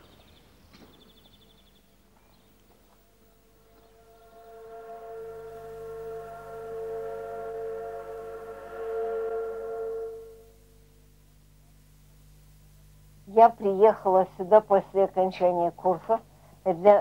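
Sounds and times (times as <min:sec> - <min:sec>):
ship's horn blast: 0:03.0 - 0:11.1.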